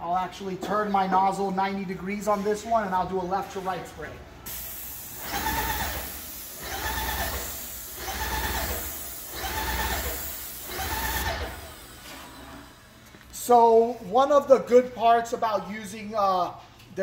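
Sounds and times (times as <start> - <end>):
hiss of spray: 4.5 - 12.0.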